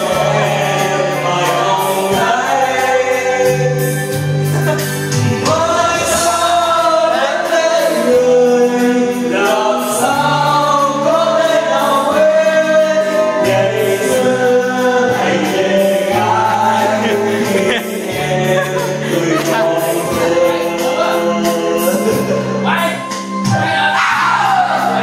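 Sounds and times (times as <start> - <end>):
karaoke backing track: 0.0 - 25.0
several voices singing: 0.0 - 25.0.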